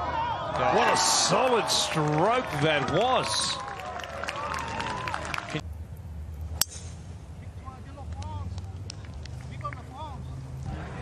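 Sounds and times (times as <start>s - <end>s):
golf club striking ball: 6.6s - 7.0s.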